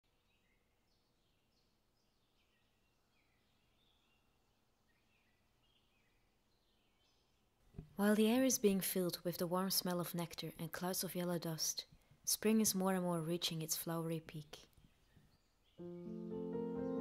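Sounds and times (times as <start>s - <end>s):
faint birdsong chirps: 0.0s - 9.0s, 10.5s - 17.0s.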